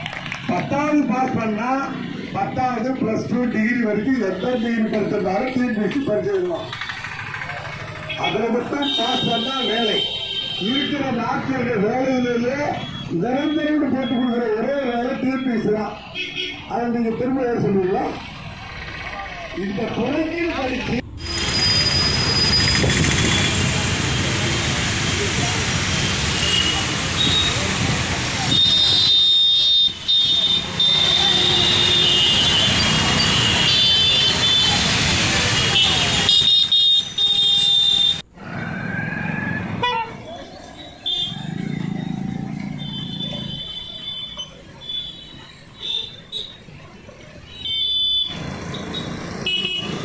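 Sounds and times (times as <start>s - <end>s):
passing traffic: 0.0s - 50.0s.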